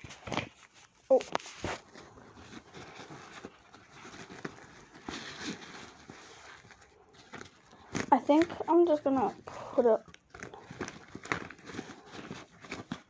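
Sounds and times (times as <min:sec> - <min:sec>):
fabric pencil case rustling: 0:00.0 - 0:13.0.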